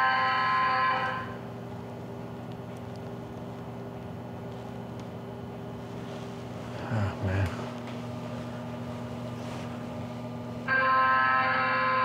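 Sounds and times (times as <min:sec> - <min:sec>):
low machine hum: 0:00.0 - 0:12.0.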